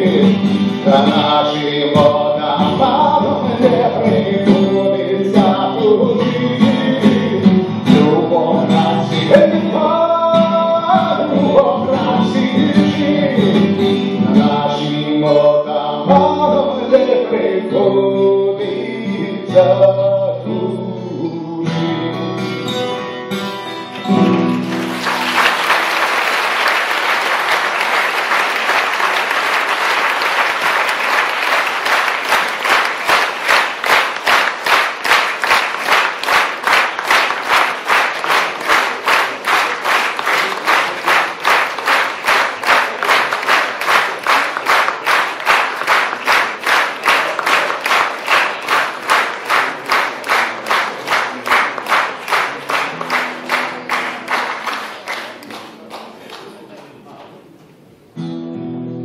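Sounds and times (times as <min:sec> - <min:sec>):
audience clapping: 0:00.0 - 0:02.1, 0:23.8 - 0:57.4.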